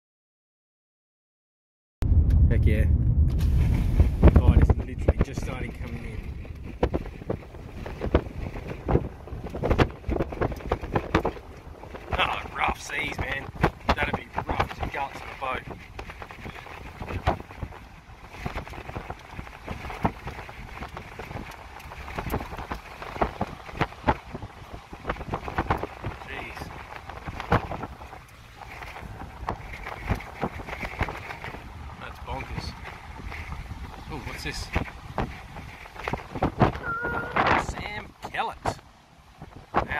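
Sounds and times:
gusty wind buffeting microphone: 0:02.0 - 0:39.9.

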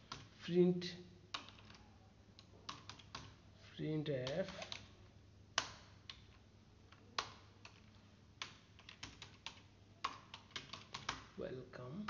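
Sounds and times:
faint keyboard keystrokes: 0:00.0 - 0:00.4, 0:01.3 - 0:03.4, 0:04.1 - 0:05.0, 0:05.6 - 0:11.4.

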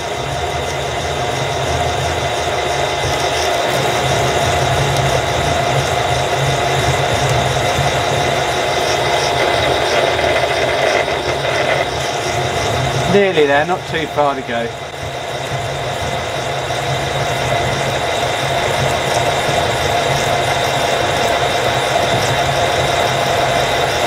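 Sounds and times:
milling machine drilling metal: 0:00.0 - 0:24.0.

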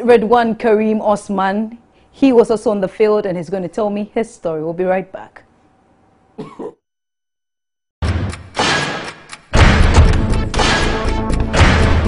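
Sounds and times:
woman clearing her throat: 0:06.4 - 0:06.8.

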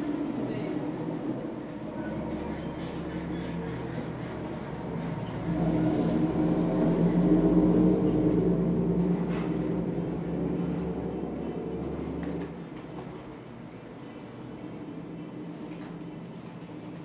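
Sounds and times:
low engine rumble: 0:00.0 - 0:12.6.

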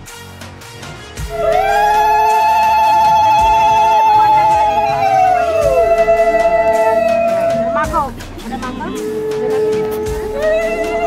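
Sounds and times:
background music: 0:00.0 - 0:11.0
women ululating: 0:01.3 - 0:08.1, 0:08.9 - 0:11.0.

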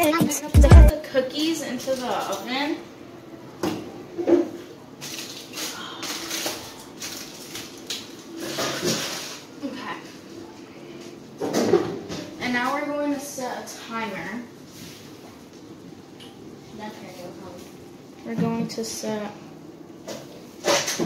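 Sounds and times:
indistinct voices: 0:00.0 - 0:00.9.

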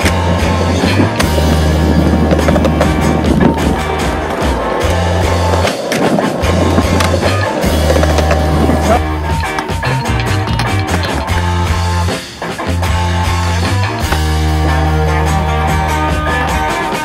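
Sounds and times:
music with held bass notes: 0:00.0 - 0:17.0
skateboard clacks: 0:00.0 - 0:17.0
skateboard wheels rolling on concrete: 0:00.0 - 0:17.0.

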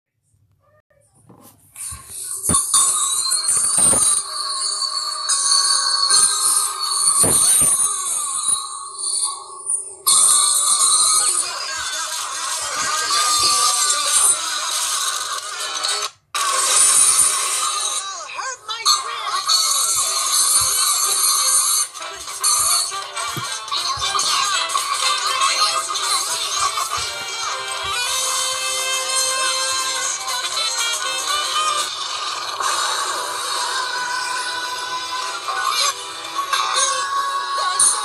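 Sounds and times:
jumble of music and cartoon sounds: 0:00.2 - 0:38.0.

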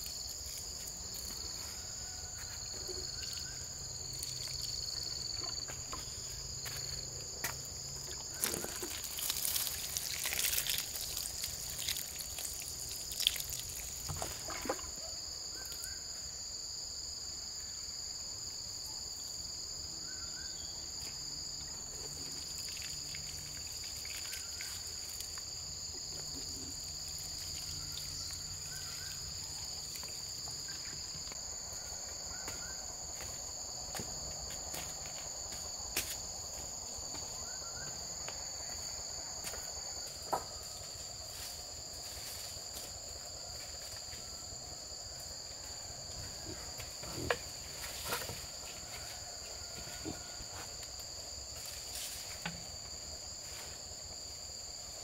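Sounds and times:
insect chorus buzzing: 0:00.0 - 0:55.0.

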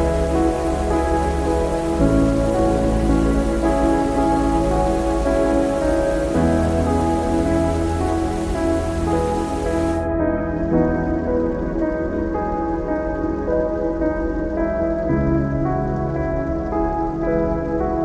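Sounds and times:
slow ambient music chords: 0:00.0 - 0:18.0
steady rain: 0:00.0 - 0:18.0.

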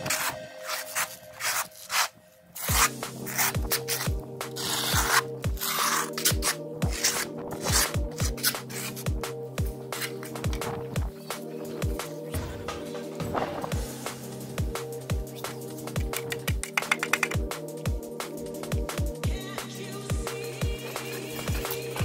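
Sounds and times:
electronic music with steady beat: 0:00.0 - 0:02.0, 0:02.6 - 0:22.0
trowel scraping adhesive on concrete: 0:00.0 - 0:09.3, 0:09.9 - 0:10.7.

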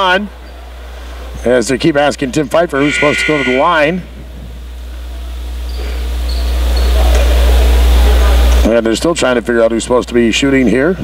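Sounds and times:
low steady hum: 0:00.0 - 0:11.0
faint crowd murmur: 0:02.8 - 0:08.7.

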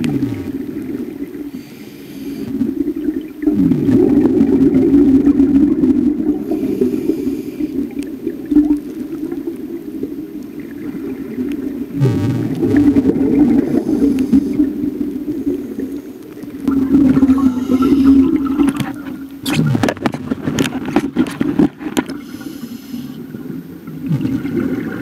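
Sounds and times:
scuba regulator exhaled bubbles: 0:00.0 - 0:25.0.

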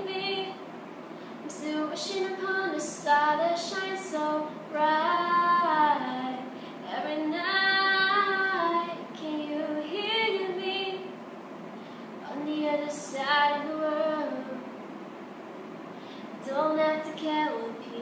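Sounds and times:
girl singing a cappella: 0:00.0 - 0:00.7, 0:01.4 - 0:11.2, 0:12.2 - 0:14.8, 0:16.4 - 0:18.0.

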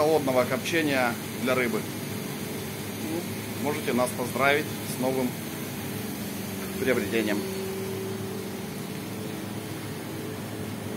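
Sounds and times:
machine hum: 0:00.2 - 0:10.9.

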